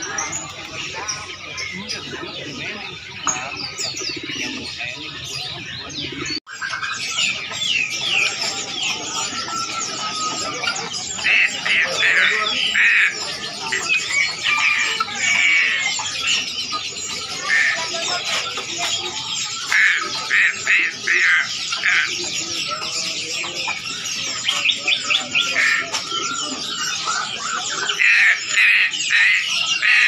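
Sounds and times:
birds chirping: 0.0s - 30.0s
pigeons cooing: 0.0s - 30.0s.

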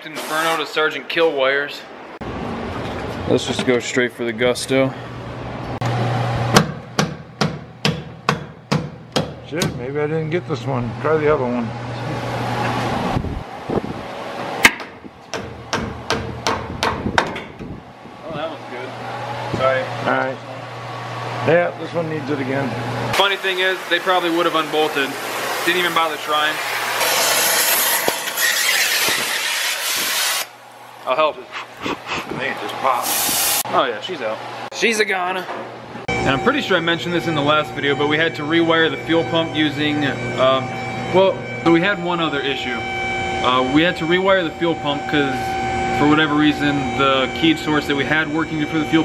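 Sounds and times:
hammer blows ringing: 6.5s - 9.9s
cutting torch hissing: 33.0s - 33.6s.

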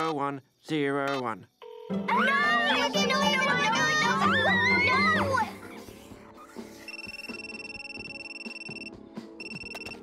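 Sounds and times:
soft background music: 1.6s - 10.0s
cordless telephone ringing: 6.9s - 10.0s.

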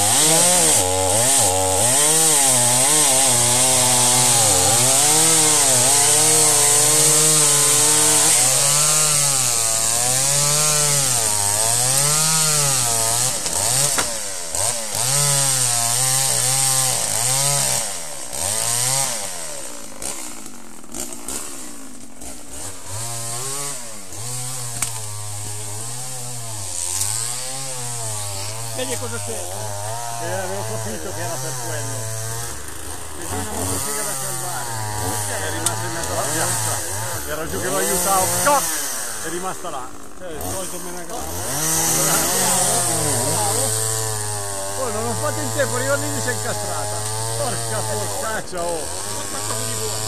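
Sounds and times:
chainsaw cutting wood: 0.0s - 50.0s.

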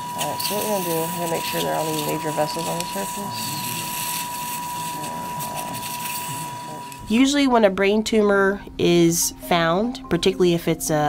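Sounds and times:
steady electronic tone: 0.0s - 7.8s
low indistinct voices: 0.2s - 7.4s.

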